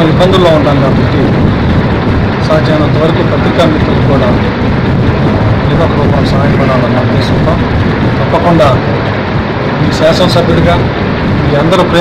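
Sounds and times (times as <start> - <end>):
man speaking into microphones: 0.0 - 1.6, 2.3 - 9.1, 9.7 - 12.0
low background rumble: 0.0 - 12.0.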